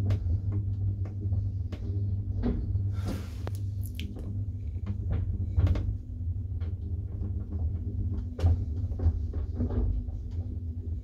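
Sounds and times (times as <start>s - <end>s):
elevator low hum: 0.0s - 11.0s.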